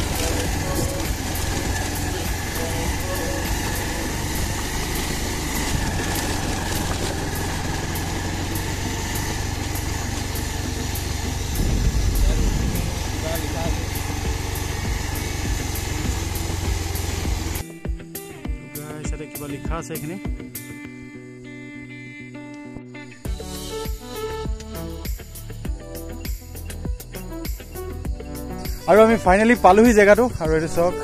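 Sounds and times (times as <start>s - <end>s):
motorcycle engine rumbling: 0.0s - 18.0s, 27.9s - 31.0s.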